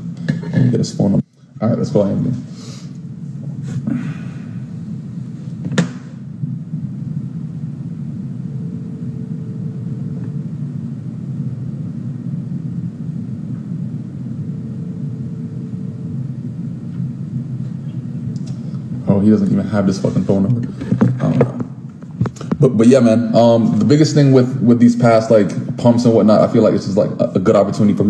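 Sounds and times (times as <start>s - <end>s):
steady low rumble: 0.0s - 28.0s.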